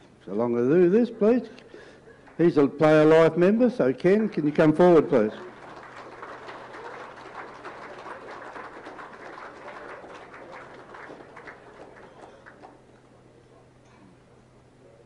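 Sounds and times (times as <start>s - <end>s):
steady low hum: 0.0s - 15.0s
audience applauding: 4.4s - 13.0s.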